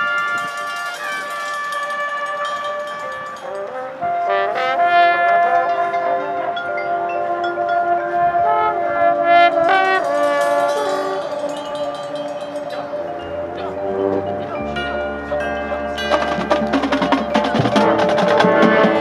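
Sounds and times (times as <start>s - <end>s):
marching band brass chords: 0.0s - 19.0s
shimmering chime flourishes: 9.6s - 13.7s.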